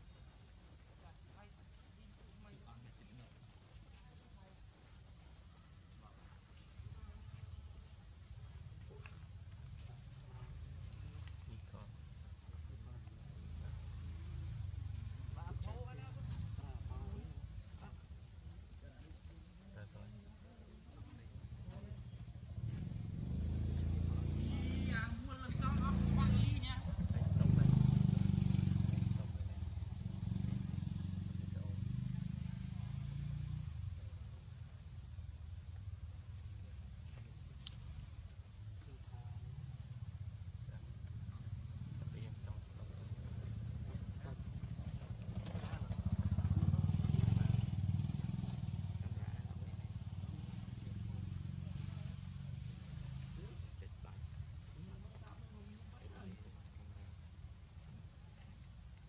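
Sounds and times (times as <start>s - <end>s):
insect chorus: 0.0s - 59.0s
motorbike engine passing: 8.4s - 18.1s, 21.4s - 59.0s.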